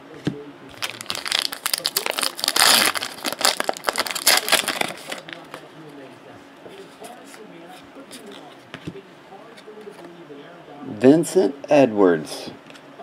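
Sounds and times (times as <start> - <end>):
foil wrapper crinkling: 0.7 - 5.6.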